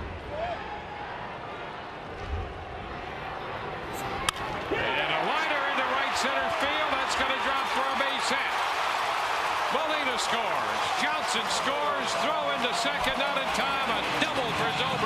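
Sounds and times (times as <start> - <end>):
crowd cheering: 0.0 - 15.0.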